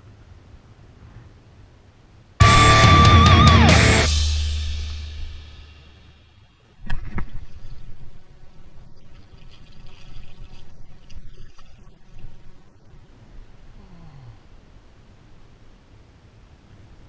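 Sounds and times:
rock music chord: 2.4s - 6.3s
water splashing and churning: 6.7s - 13.6s.

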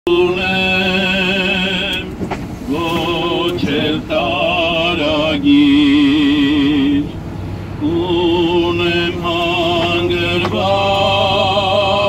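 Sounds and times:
person singing hymn with vibrato: 0.1s - 12.0s.

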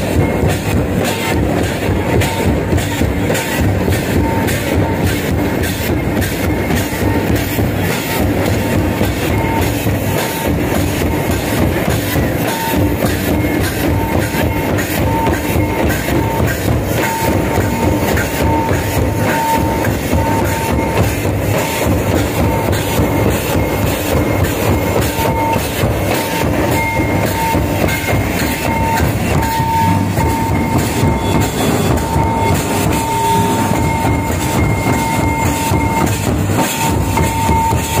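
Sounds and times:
folk drums beaten with sticks: 0.0s - 38.0s.

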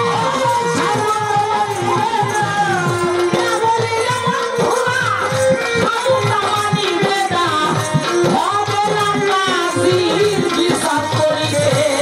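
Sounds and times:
hand-drum beat: 0.0s - 12.0s
jingling percussion: 0.0s - 12.0s
woman singing into a microphone: 0.0s - 12.0s.

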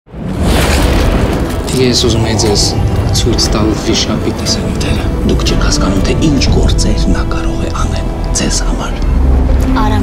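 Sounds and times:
loud thunder rumbling: 0.1s - 7.3s.

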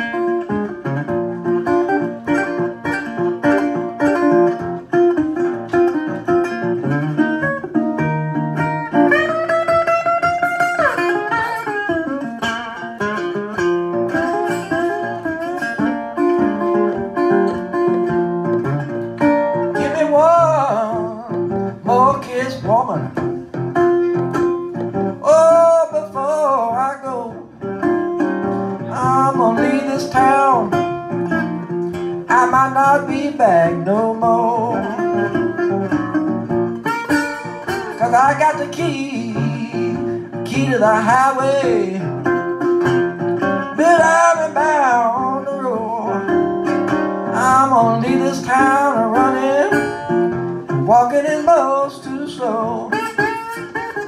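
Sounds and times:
picked bass line: 0.0s - 54.0s
slide guitar blues solo: 0.0s - 54.0s.

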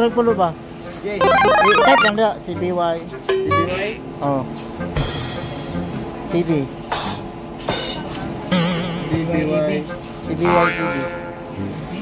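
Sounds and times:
phone ringtone melody: 1.2s - 2.2s.

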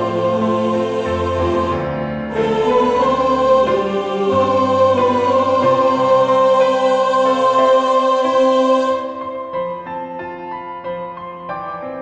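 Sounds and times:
choir singing: 0.0s - 9.9s
piano accompaniment: 0.0s - 12.0s.

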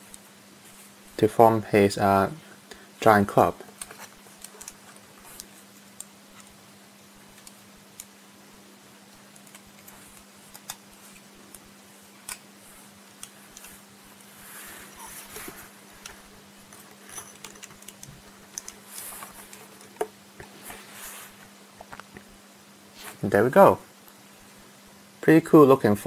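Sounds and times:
faint steady hum: 0.0s - 26.0s
plastic parts clicking and rustling: 3.5s - 6.6s, 9.1s - 12.4s, 14.9s - 20.1s.

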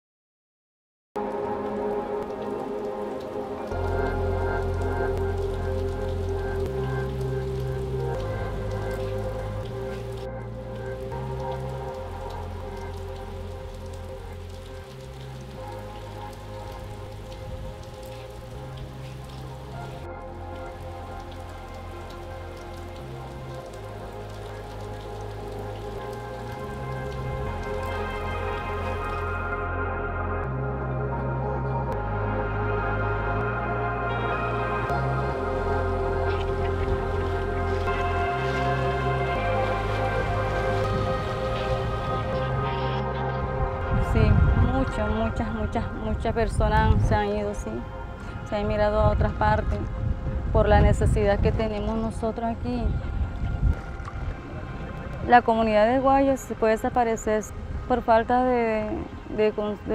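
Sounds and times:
steady rain falling: 1.2s - 29.7s, 30.4s - 59.9s
soft ambient music: 1.2s - 59.9s.

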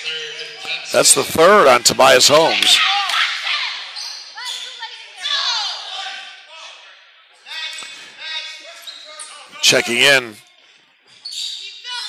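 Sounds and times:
players' voices: 0.0s - 10.8s
sneaker squeaks on hardwood floor: 3.9s - 4.8s, 8.8s - 9.3s, 11.1s - 12.0s.

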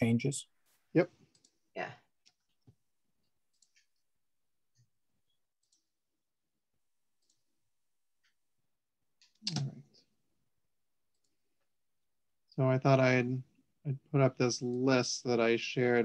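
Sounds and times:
computer mouse clicks: 2.2s - 4.0s, 5.5s - 6.0s, 7.2s - 7.5s, 9.2s - 9.8s.

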